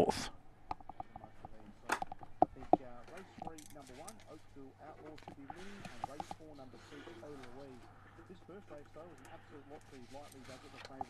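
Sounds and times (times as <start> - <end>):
faint background talking: 0.9 - 11.0.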